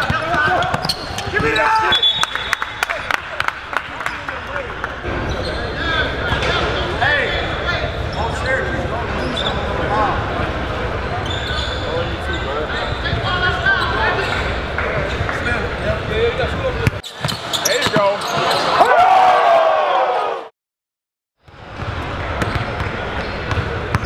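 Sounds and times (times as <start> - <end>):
basketball bouncing on court: 16.8 - 18.6, 21.4 - 24.0.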